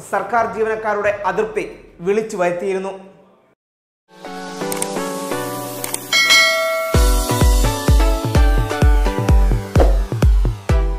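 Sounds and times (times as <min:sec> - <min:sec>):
bell chime: 0:06.1 - 0:07.8
electronic music with kick drum: 0:06.2 - 0:10.9.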